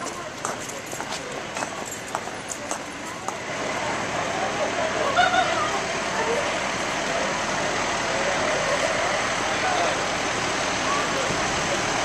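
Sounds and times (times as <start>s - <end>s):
engines and traffic rushing: 0.0s - 12.0s
faint voices: 0.0s - 12.0s.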